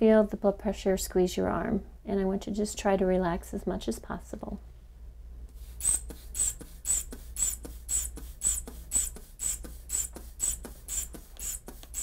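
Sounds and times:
inflation bulb squeezing hiss: 0:05.5 - 0:12.0.

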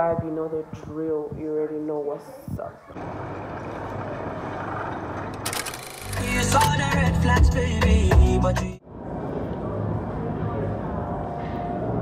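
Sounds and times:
restaurant room noise: 0:00.0 - 0:12.0.

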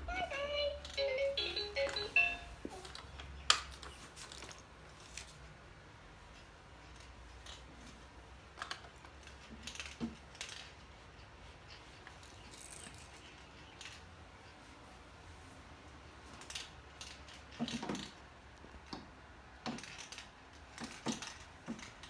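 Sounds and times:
plastic toys clicking and knocking: 0:02.7 - 0:05.3, 0:06.8 - 0:14.1, 0:16.2 - 0:22.0.

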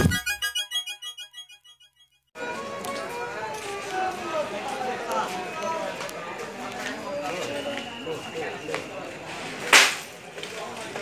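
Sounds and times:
crowd chattering: 0:02.4 - 0:11.0.

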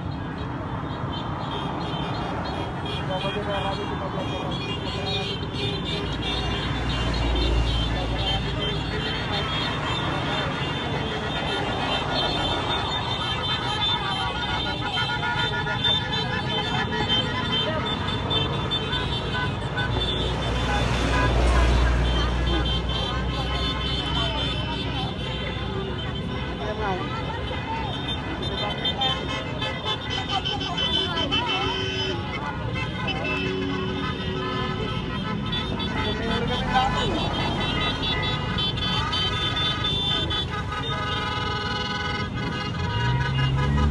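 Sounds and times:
crowd voices: 0:00.0 - 0:43.9
horns tooting: 0:00.0 - 0:43.9.

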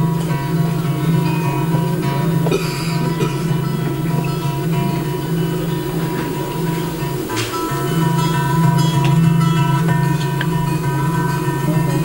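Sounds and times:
guitar sustained notes: 0:00.0 - 0:12.0
low drone: 0:00.0 - 0:12.0.

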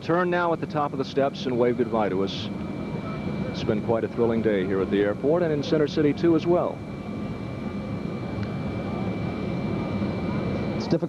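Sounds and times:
jet aircraft rumble and whine: 0:00.0 - 0:11.0.

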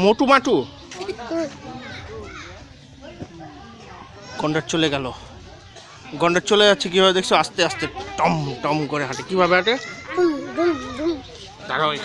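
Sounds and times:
background voices talking: 0:00.6 - 0:12.0
nearby speech: 0:10.1 - 0:11.6.

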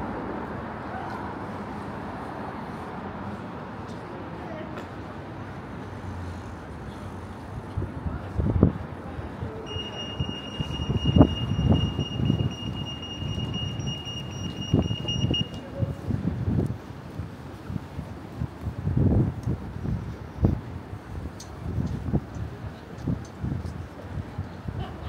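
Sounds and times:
traffic rumble: 0:00.0 - 0:25.0
wind buffeting microphone: 0:07.3 - 0:25.0
high-pitched electronic tone: 0:09.7 - 0:15.7.

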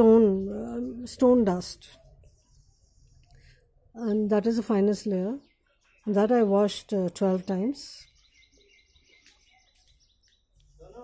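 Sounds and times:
faint bird chirping: 0:00.0 - 0:11.0.

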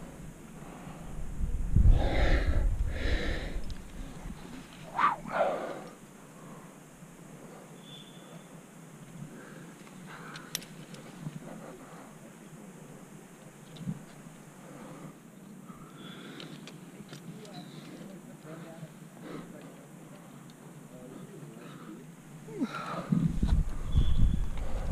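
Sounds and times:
person breathing hard: 0:00.1 - 0:07.8, 0:09.2 - 0:10.6, 0:21.2 - 0:23.9, 0:24.5 - 0:24.9
faint clicks: 0:09.8 - 0:11.5, 0:16.2 - 0:18.0, 0:19.5 - 0:20.6.

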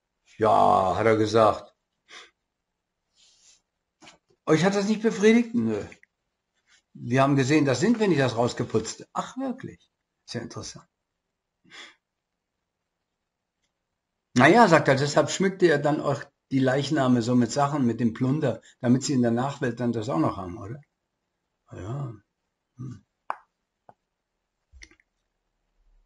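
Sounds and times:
soft breath: 0:11.7 - 0:12.0.

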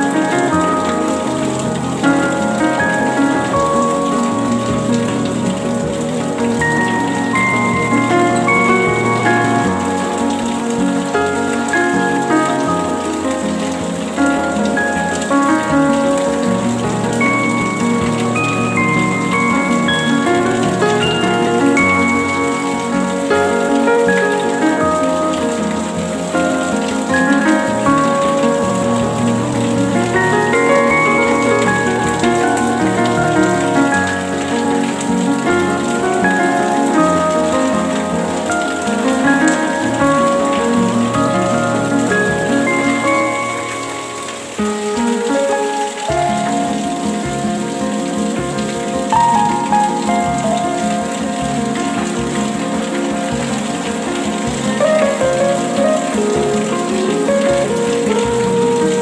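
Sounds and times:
instrumental music with held notes: 0:00.0 - 0:59.0
steady rain: 0:00.0 - 0:59.0.

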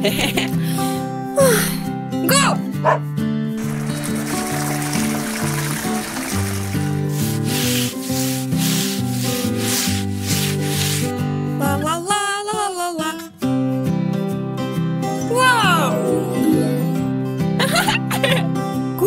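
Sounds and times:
light children's music: 0:00.0 - 0:11.0, 0:12.9 - 0:19.0
bristle brush scrubbing: 0:03.6 - 0:11.2.

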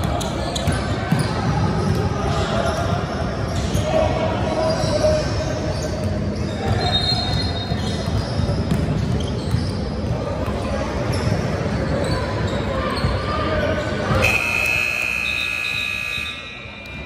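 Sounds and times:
voices echoing in hall: 0:00.0 - 0:08.7, 0:09.5 - 0:17.0.

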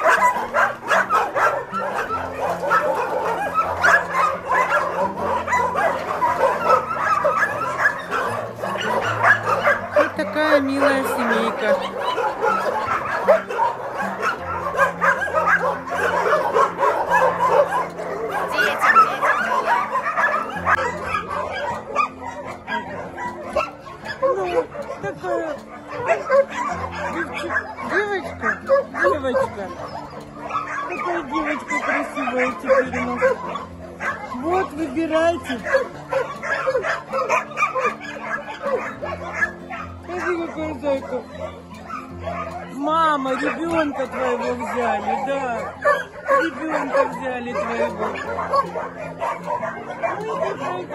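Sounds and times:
puppies whimpering and yipping: 0:00.0 - 0:50.9.

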